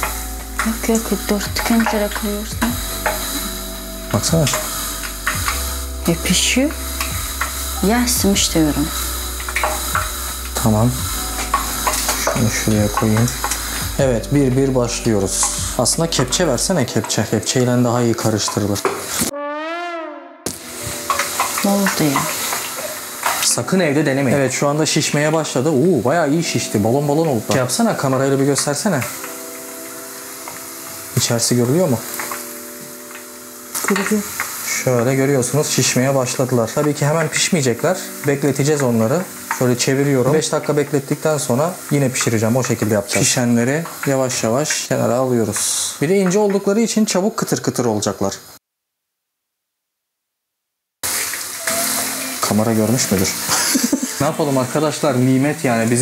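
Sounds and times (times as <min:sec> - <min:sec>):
potato slices frying in oil: 0:00.0 - 0:19.3, 0:20.5 - 0:48.6, 0:51.0 - 0:56.0
background music: 0:00.0 - 0:47.8, 0:51.1 - 0:56.0
people talking: 0:00.6 - 0:02.8, 0:06.0 - 0:06.8, 0:07.8 - 0:09.0, 0:10.6 - 0:11.0, 0:12.2 - 0:13.4, 0:14.0 - 0:18.9, 0:21.6 - 0:22.4, 0:23.4 - 0:29.1, 0:33.8 - 0:48.4, 0:51.7 - 0:56.0
brass horn note sliding pitch: 0:19.2 - 0:20.8.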